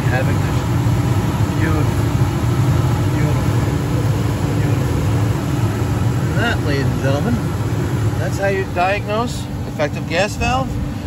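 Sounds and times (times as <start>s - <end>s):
gas burners rumbling: 0.0s - 11.0s
heater hum: 0.0s - 11.0s.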